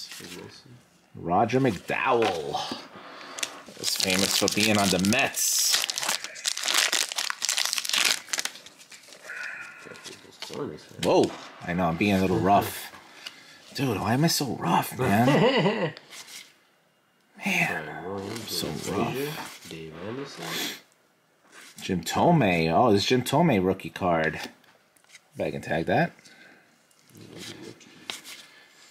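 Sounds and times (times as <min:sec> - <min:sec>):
foil wrapper tearing and crinkling: 0:03.4 - 0:09.2.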